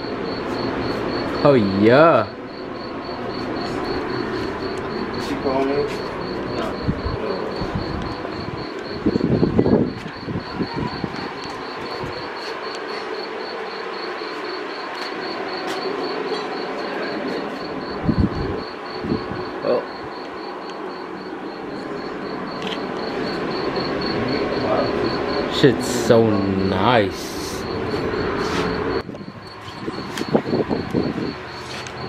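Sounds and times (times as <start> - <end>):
insect chirping: 0.0 - 32.0.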